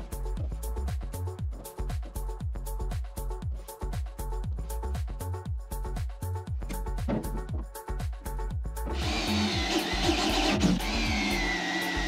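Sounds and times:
power drill cutting sheet metal: 0:09.0 - 0:12.0.

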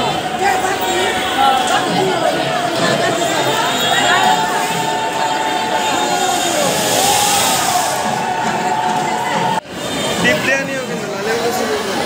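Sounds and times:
crowd noise: 0:00.0 - 0:12.0
firework fountain hissing: 0:02.7 - 0:10.4.

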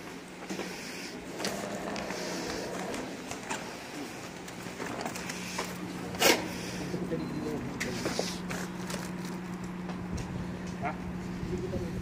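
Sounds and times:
steady low hum: 0:00.0 - 0:12.0
indistinct voices: 0:01.2 - 0:08.7.

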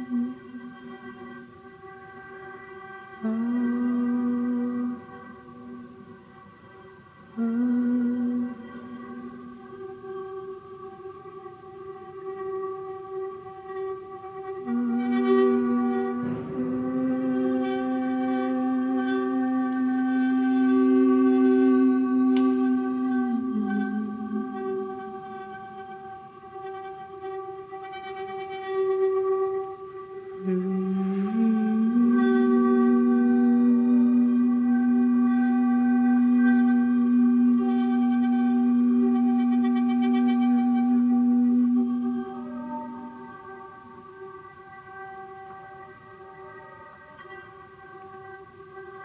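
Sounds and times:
steady pitched drone: 0:14.5 - 0:27.5, 0:30.0 - 0:44.5.

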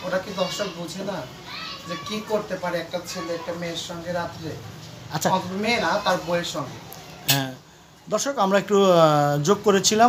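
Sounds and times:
voices talking in a room: 0:00.0 - 0:10.0.

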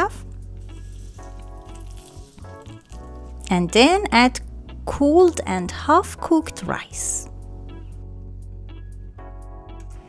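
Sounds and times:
background music: 0:00.0 - 0:10.0
bread sizzling in hot oil: 0:00.2 - 0:03.4.

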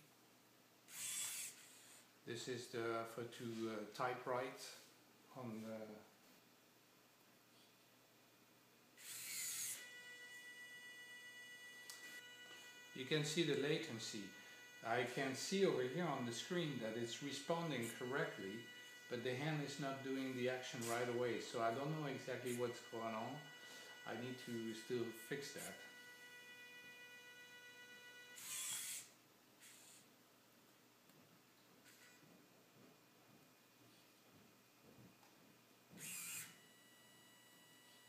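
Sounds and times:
servo motors whirring: 0:00.9 - 0:01.9, 0:09.0 - 0:30.1, 0:35.9 - 0:36.9
high whine: 0:09.0 - 0:30.0.

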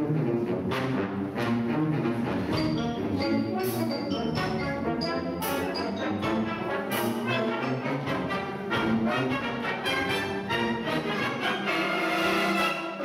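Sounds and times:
symphonic wind band playing: 0:00.0 - 0:13.0.

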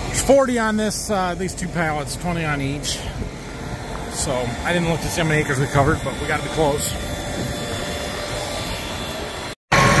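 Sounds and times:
tractor engine idling: 0:00.0 - 0:09.4.

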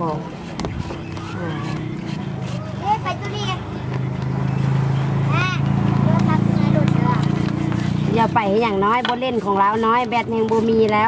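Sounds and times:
engine running: 0:00.0 - 0:10.8.

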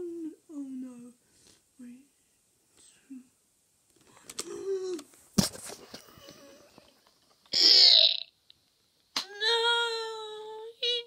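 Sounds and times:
child wavering vocal sound: 0:04.4 - 0:05.1.

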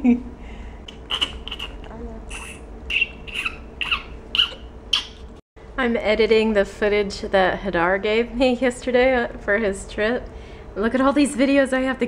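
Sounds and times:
faint steady hum: 0:00.0 - 0:12.0
baby squeaking: 0:01.1 - 0:05.3.

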